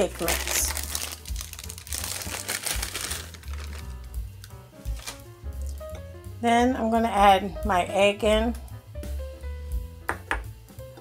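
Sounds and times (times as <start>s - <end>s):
plastic bag crinkling: 0.0s - 5.8s
quiet background music: 0.0s - 11.0s.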